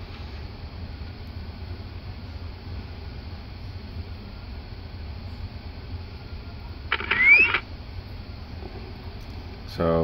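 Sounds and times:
steady low hum: 0:00.0 - 0:10.0
short electronic rising chirp: 0:07.0 - 0:07.6.

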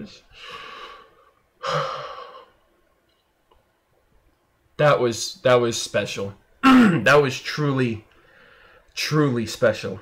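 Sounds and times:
man's heavy breath: 0:00.3 - 0:02.5, 0:08.2 - 0:08.9.

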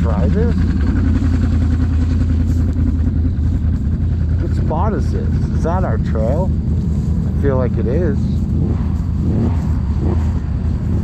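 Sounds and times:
atv engine idling: 0:00.0 - 0:11.0.

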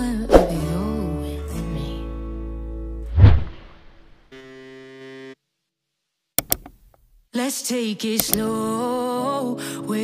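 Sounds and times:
background song: 0:00.0 - 0:02.3, 0:07.3 - 0:10.0
quick clicks: 0:08.2 - 0:08.4.

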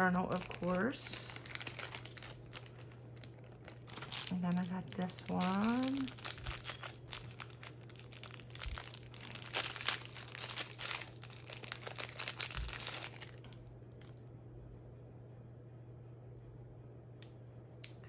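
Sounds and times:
plastic packaging crinkling: 0:00.0 - 0:14.1.

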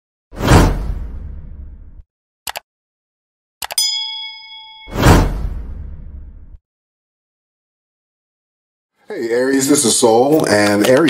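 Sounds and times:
whoosh with low rumble: 0:05.0 - 0:06.6.

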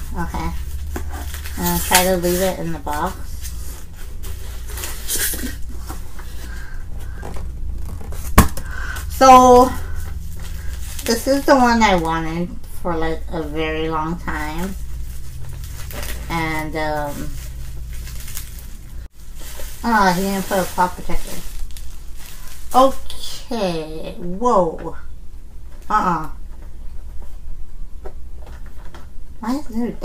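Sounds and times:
plastic and cardboard crinkling: 0:00.0 - 0:23.6
steady low hum: 0:00.0 - 0:30.0.

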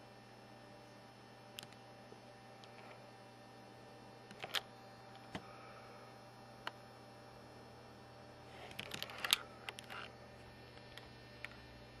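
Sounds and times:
faint steady hum: 0:00.0 - 0:12.0
clicks and rustles from handling phone: 0:08.6 - 0:10.1.

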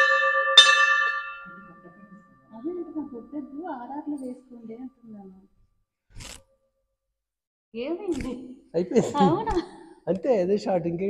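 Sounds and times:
metal temple bell ringing: 0:00.0 - 0:05.2.

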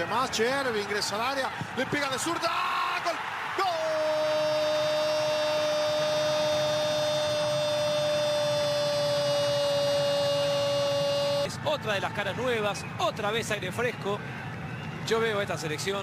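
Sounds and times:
commentator crying goal: 0:03.6 - 0:11.6.

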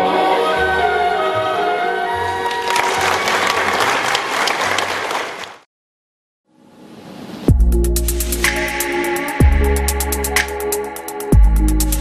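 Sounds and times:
orchestral music: 0:00.0 - 0:04.3, 0:07.5 - 0:12.0
audience applauding: 0:02.4 - 0:05.7.

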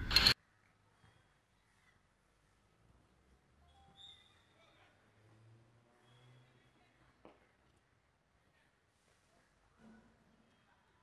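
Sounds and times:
faint high chirping: 0:03.6 - 0:04.9.

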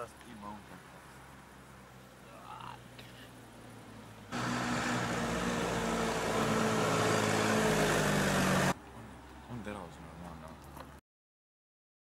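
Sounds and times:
tractor engine running: 0:04.3 - 0:08.8.

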